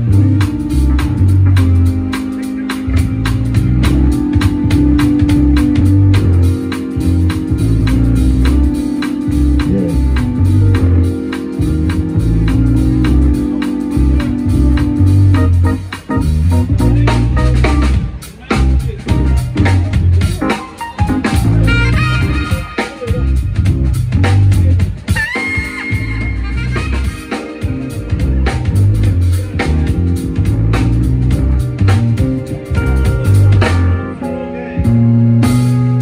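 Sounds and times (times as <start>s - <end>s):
bass line: 0.0s - 36.0s
live band music: 0.0s - 36.0s
organ keyboard chords: 0.0s - 36.0s
steady drum beat: 0.0s - 36.0s.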